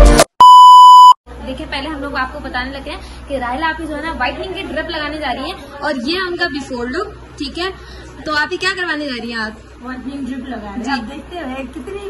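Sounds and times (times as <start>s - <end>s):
loud electronic beep: 0.0s - 1.2s.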